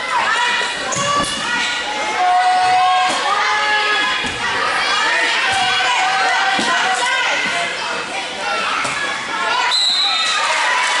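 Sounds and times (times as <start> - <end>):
people shouting and cheering: 0.0 - 11.0.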